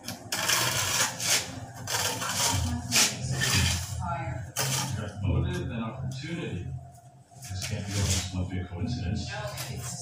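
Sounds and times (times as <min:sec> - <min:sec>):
steel trowels scraping together: 0:00.3 - 0:03.9.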